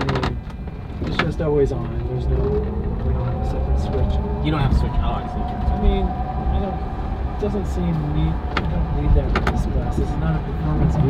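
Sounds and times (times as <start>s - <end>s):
road and drivetrain rumble: 0.0s - 11.0s.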